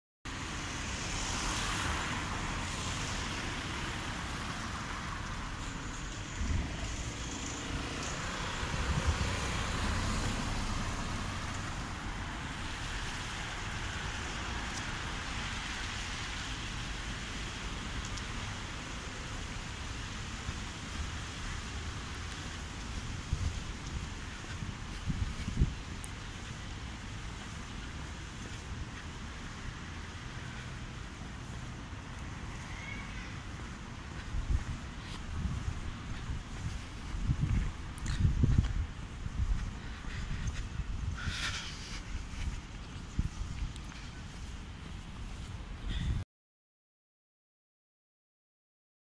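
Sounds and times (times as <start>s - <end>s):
traffic noise: 0.2s - 46.2s.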